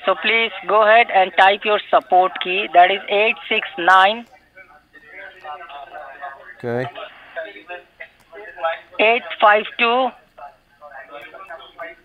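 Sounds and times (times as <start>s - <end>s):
man talking over telephone line: 6.6s - 7.0s.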